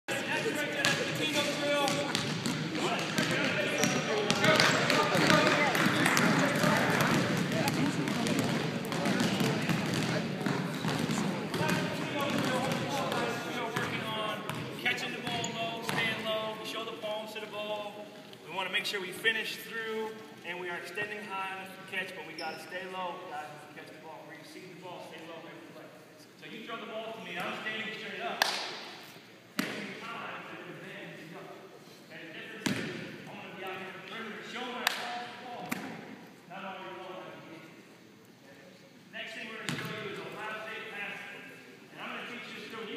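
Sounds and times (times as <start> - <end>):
basketballs bouncing on wooden floor: 0.8 - 16.2, 32.6 - 33.1.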